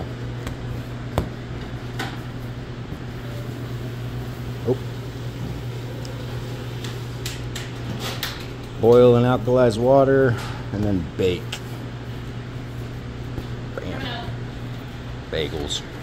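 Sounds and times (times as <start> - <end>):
kitchen ventilation hum: 0.0 - 16.0.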